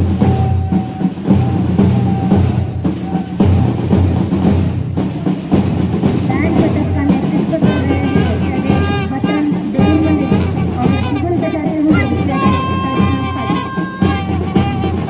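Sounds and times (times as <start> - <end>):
music with drums: 0.0 - 15.0.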